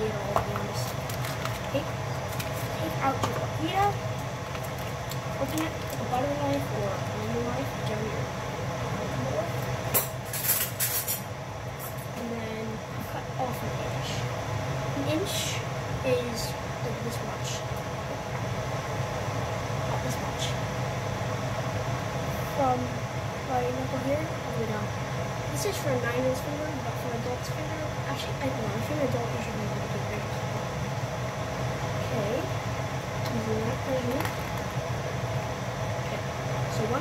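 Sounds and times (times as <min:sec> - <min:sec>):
girl's voice: 0:00.0 - 0:01.0, 0:01.7 - 0:01.9, 0:02.6 - 0:04.0, 0:05.4 - 0:09.6, 0:12.2 - 0:14.3, 0:15.0 - 0:17.7, 0:19.9 - 0:20.6, 0:22.4 - 0:30.4, 0:32.0 - 0:32.5, 0:33.3 - 0:34.3, 0:36.0 - 0:37.0
water boiling and bubbling: 0:00.0 - 0:10.4, 0:11.2 - 0:37.0
pot of pasta boiling: 0:00.0 - 0:11.7, 0:29.6 - 0:37.0
steady low hum: 0:00.0 - 0:37.0.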